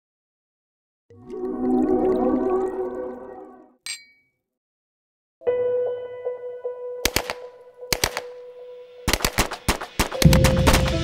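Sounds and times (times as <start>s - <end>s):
sharp cracks: 7.0s - 8.4s, 9.0s - 11.0s.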